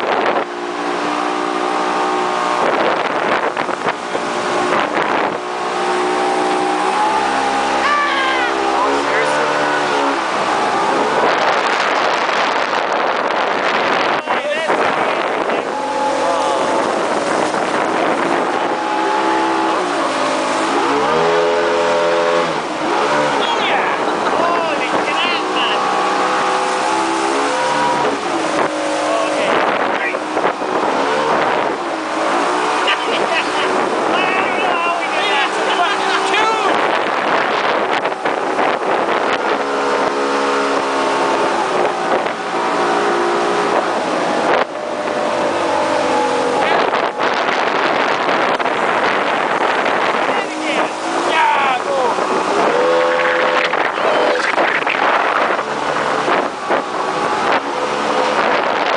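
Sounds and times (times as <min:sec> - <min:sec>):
boat engine running: 0:00.0 - 0:58.9
water rushing along hull: 0:00.0 - 0:58.9.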